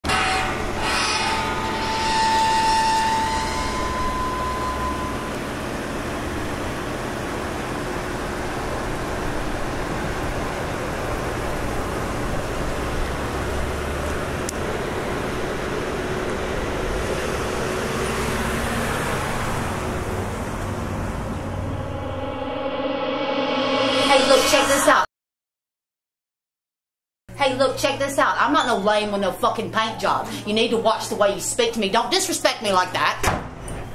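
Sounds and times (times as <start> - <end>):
steady rumbling noise: 19.7 - 25.1.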